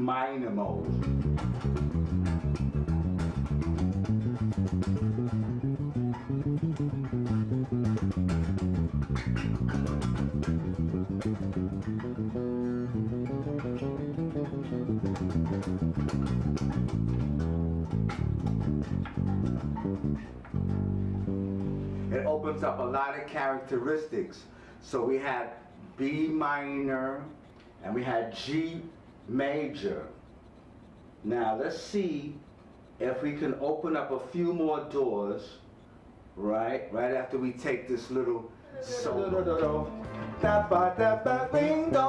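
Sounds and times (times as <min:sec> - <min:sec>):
electric bass scale runs: 0:00.8 - 0:23.0, 0:39.3 - 0:42.0.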